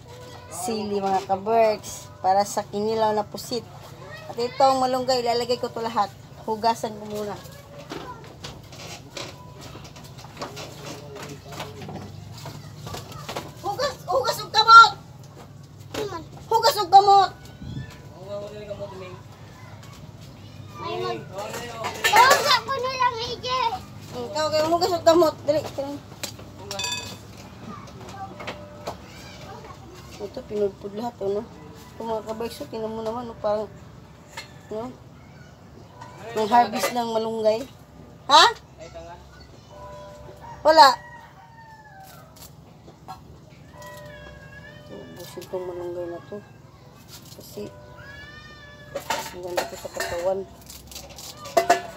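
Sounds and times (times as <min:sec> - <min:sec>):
children chattering and calling out: 0:00.0 - 0:51.9
rooster crowing: 0:40.3 - 0:42.5
child high-pitched shout: 0:44.0 - 0:45.4, 0:47.9 - 0:49.0.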